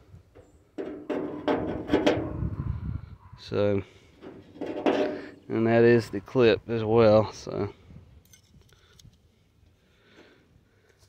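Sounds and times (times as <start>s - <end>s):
lock knocking and scraping in metal: 0.4s - 2.5s, 4.2s - 5.4s.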